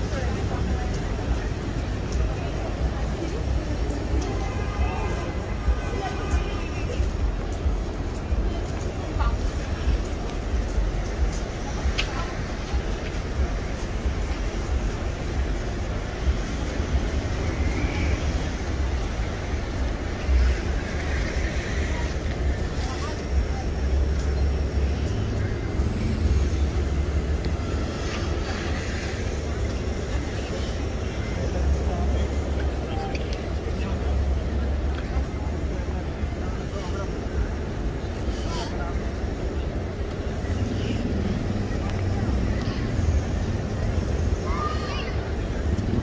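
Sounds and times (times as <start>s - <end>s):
pedestrians chattering: 0.0s - 46.0s
steady low rumble: 0.0s - 46.0s
traffic: 0.0s - 46.0s.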